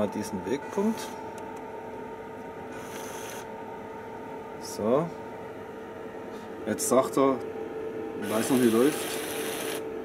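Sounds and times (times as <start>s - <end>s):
two-note electrical whine: 0.0s - 5.1s, 6.7s - 10.0s.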